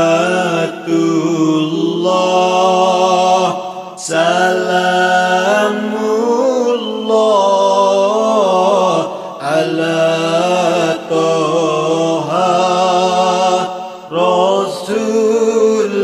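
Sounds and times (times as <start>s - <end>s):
devotional chanting: 0.0s - 16.0s.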